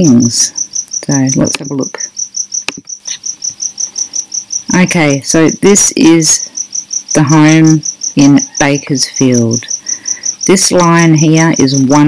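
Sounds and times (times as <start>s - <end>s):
woman's voice: 0.0s - 2.1s, 4.7s - 6.5s, 7.2s - 12.0s
cricket chirping: 0.0s - 12.0s.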